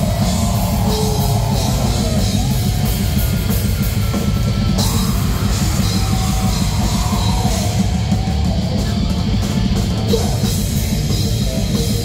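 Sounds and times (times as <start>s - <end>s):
bass guitar: 0.0s - 12.0s
distorted electric guitars: 0.0s - 12.0s
fast dense drumming: 0.0s - 12.0s.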